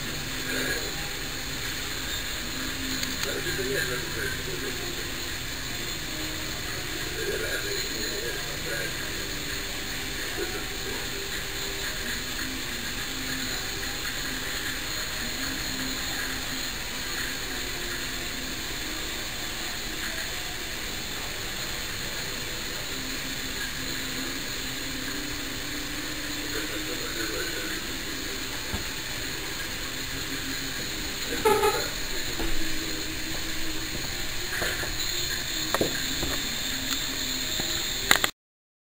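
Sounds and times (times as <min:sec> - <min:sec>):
outdoor background hiss: 0:00.0 - 0:38.3.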